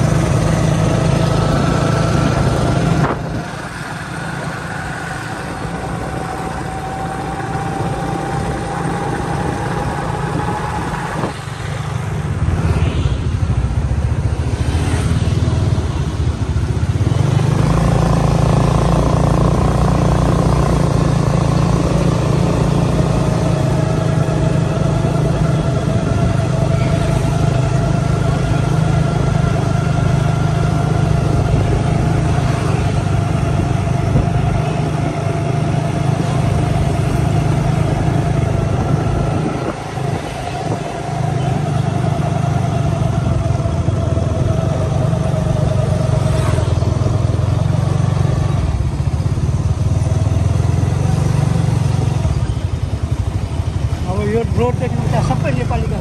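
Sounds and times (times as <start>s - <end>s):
small motorcycle engine running: 0.0s - 13.1s, 14.5s - 56.0s.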